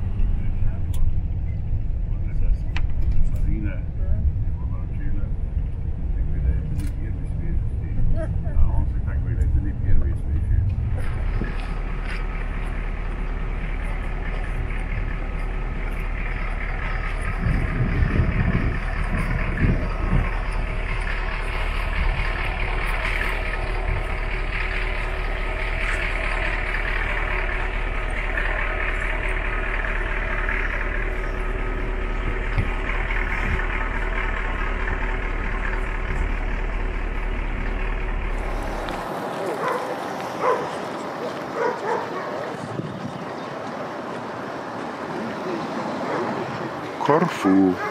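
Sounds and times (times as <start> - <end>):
coach engine rumble: 0.0 - 47.9.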